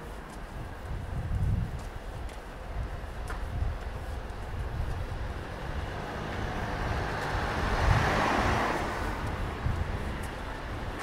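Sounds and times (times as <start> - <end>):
car passing close by: 5.4 - 11.0.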